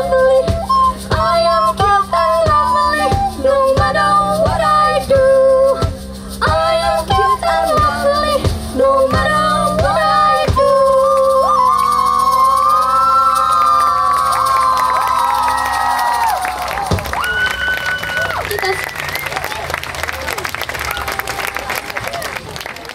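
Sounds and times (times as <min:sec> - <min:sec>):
audience cheering and applauding: 0:11.4 - 0:22.9
drum hits: 0:16.7 - 0:17.6.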